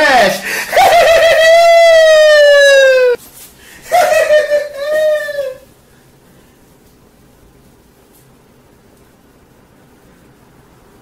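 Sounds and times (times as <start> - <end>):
man wailing: 0.0 - 3.2, 3.9 - 5.7.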